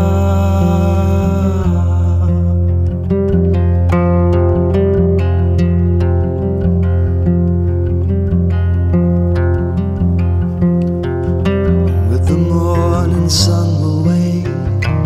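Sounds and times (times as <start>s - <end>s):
acoustic guitar picking: 0.0s - 15.0s.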